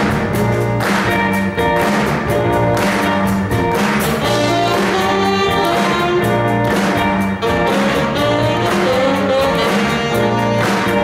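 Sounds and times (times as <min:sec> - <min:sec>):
live jazz band: 0:00.0 - 0:11.0
saxophones playing: 0:04.2 - 0:11.0.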